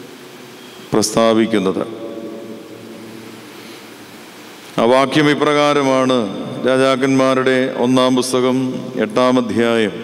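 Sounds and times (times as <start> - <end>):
room hiss through microphone: 0.0 - 10.0.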